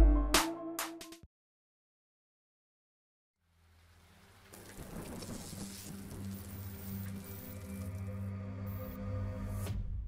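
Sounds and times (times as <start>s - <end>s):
rain hiss: 3.5s - 8.2s
low musical drone: 6.7s - 9.7s.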